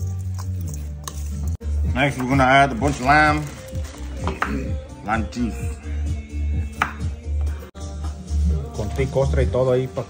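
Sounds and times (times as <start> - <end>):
background music with bass beat: 0.9 - 10.0
knife chopping on wooden board: 6.7 - 7.1.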